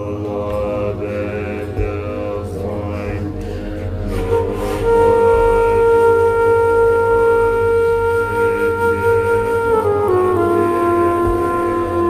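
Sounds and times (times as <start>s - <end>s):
low drone: 0.0s - 12.0s
flute-like long note: 3.9s - 12.0s.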